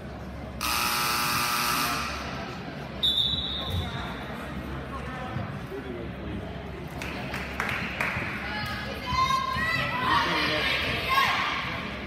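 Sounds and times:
crowd chatter in a hall: 0.0 - 12.0
referee's whistle blast: 3.0 - 3.8.

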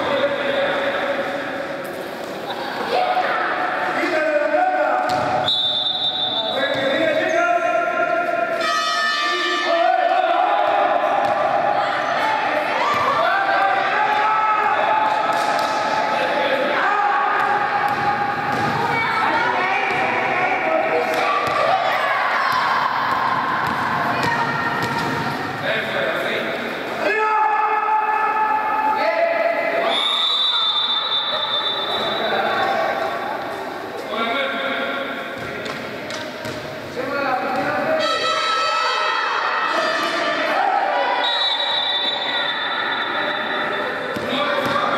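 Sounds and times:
people shouting in gymnasium: 2.5 - 25.7, 27.0 - 33.5, 37.1 - 44.9
basketball bouncing on court: 5.0 - 5.4, 17.4 - 19.0, 19.8 - 20.2, 22.5 - 25.4, 36.4 - 36.7, 44.1 - 44.9.

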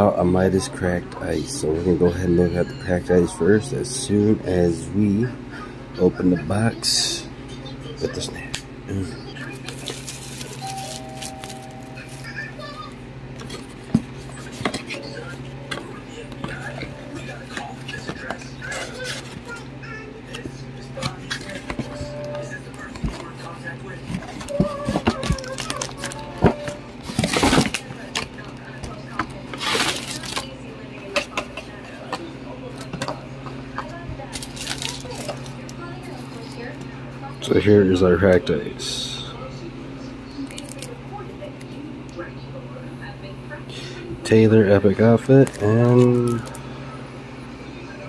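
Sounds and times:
foil packs crinkling: 9.4 - 12.4, 24.0 - 28.4, 29.5 - 30.5, 34.3 - 36.3, 45.2 - 46.6
shrink wrap tearing and crinkling: 9.4 - 12.4, 24.2 - 26.4, 27.0 - 28.3, 29.5 - 30.5, 34.3 - 35.6, 45.4 - 46.6.

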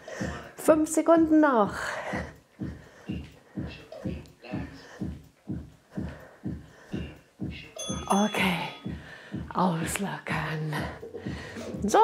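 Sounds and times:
dull workout thumps: 0.0 - 12.0.

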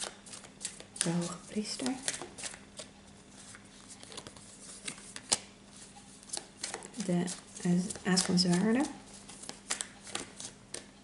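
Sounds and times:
rustling of cards: 0.0 - 10.9.

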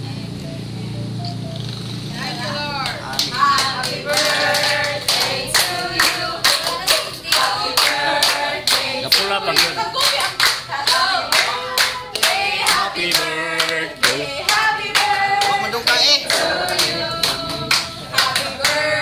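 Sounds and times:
group of people singing: 2.2 - 19.0
hands clapping in rhythm: 2.8 - 19.0.

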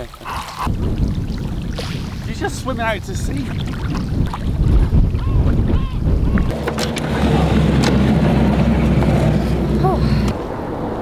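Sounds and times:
rumbling water: 0.0 - 11.0
wind noise: 0.2 - 11.0
steady low drone: 6.5 - 10.8.

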